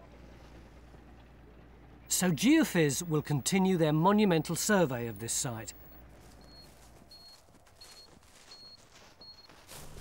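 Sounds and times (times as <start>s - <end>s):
low hum: 0.0s - 8.3s.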